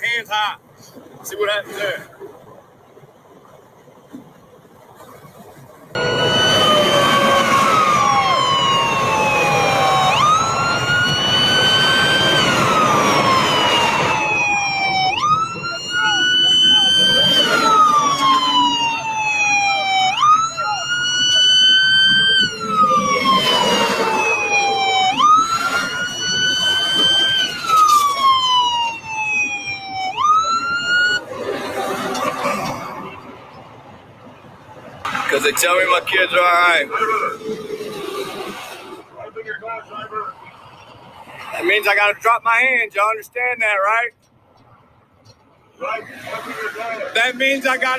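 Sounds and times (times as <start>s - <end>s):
police sirens wailing: 6.0s - 34.0s, 34.8s - 38.6s, 45.9s - 47.9s.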